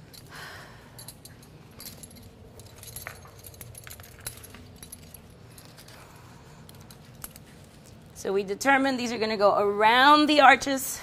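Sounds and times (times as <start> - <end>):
metal clips clinking: 1.0 - 6.0.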